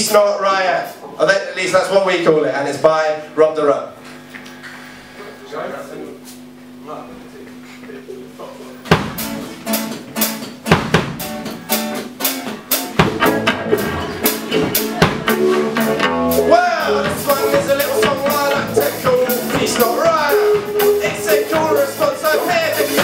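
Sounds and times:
drum kit: 8.8 - 23.0
bass guitar: 8.9 - 23.0
acoustic guitar: 9.0 - 23.0.

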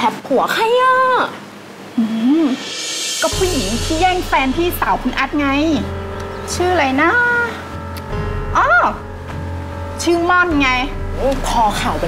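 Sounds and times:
background music: 1.8 - 12.0
woman speaking with sliding pitch: 2.0 - 5.9.

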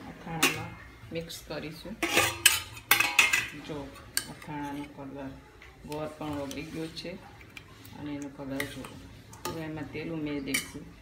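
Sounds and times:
steel pot lid clattering: 2.0 - 3.6
ladle clinking against pot: 2.0 - 4.9.

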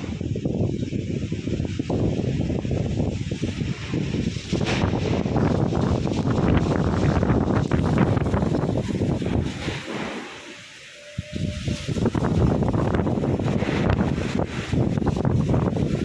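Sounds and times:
gusty wind buffeting microphone: 0.0 - 16.0.

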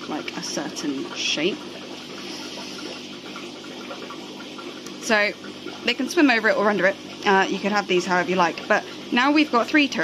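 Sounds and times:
low pump hum: 0.0 - 10.0
running water trickling: 0.0 - 10.0.

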